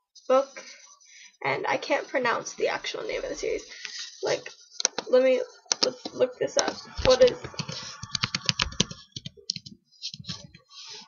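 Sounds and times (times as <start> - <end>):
computer keyboard typing: 6.9 - 9.7.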